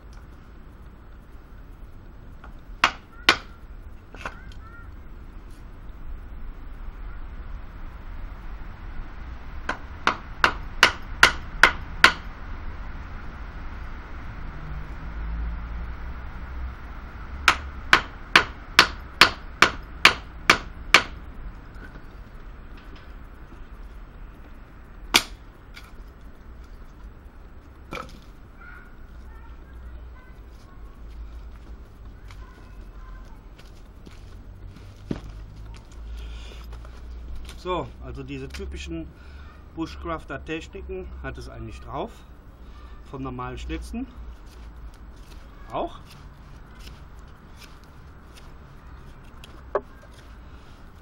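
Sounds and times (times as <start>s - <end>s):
wooden strikes on chopping block: 2.8s - 3.5s, 17.5s - 21.2s, 25.2s - 25.4s
knife striking into wood: 25.2s - 25.4s.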